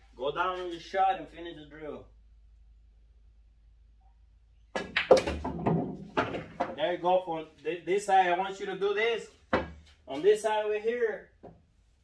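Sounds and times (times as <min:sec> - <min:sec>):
pool balls clacking: 0:04.8 - 0:06.8.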